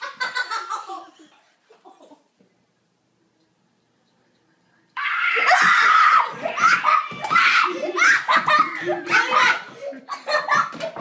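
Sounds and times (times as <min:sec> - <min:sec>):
boy screaming in fright: 0:05.0 - 0:09.6.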